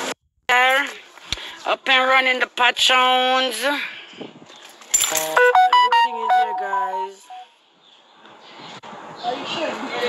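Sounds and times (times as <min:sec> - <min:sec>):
pitched tone: 0:05.2 - 0:07.5.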